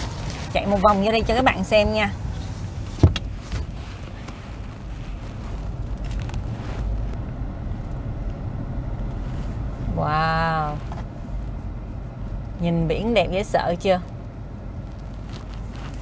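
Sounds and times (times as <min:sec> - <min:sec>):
road and engine rumble: 0:00.0 - 0:16.0.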